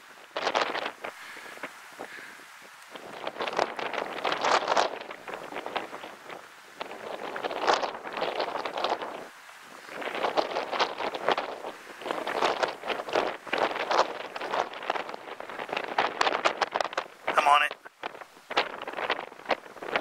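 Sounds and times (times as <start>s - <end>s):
dry brush rustling and crackling: 0.0s - 20.0s.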